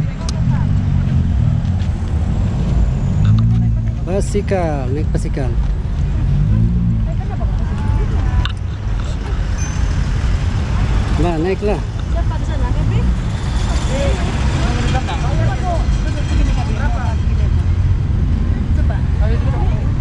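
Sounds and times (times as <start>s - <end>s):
people chatting: 7.0s - 9.6s.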